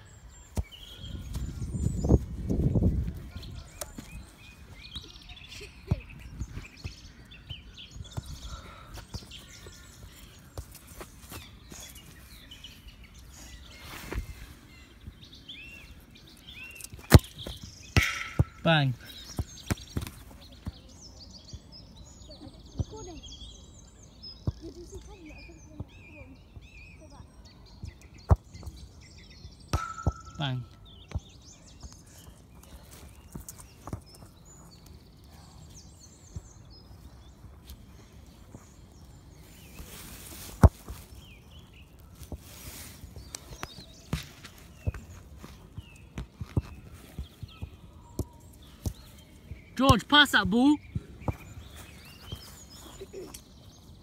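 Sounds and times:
grass rustling against microphone: 8.1 - 20.4, 35.8 - 49.8, 50.6 - 54.0.

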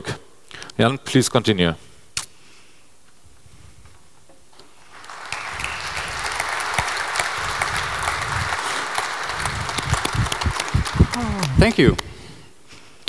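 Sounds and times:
audience applause: 4.8 - 12.0.

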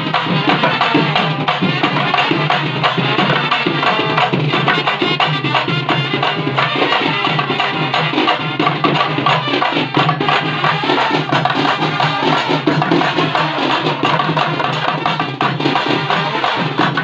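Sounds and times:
trumpets playing: 0.0 - 14.3, 15.3 - 17.0
hand drums beat: 0.0 - 17.0.

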